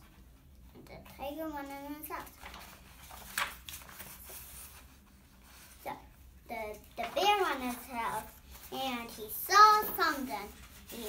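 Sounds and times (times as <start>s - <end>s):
paper pages rustling: 1.6s - 5.8s, 6.7s - 11.0s.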